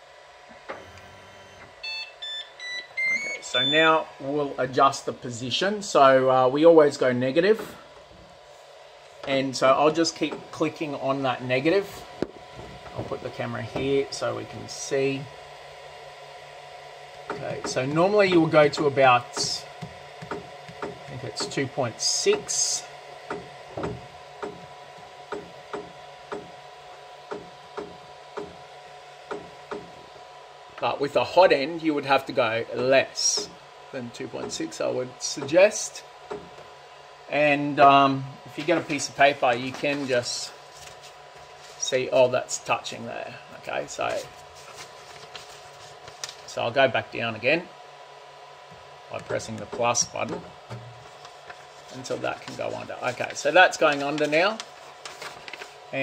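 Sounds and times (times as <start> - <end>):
printer humming: 0.0 - 56.0
touchscreen electronic beep: 0.8 - 3.9.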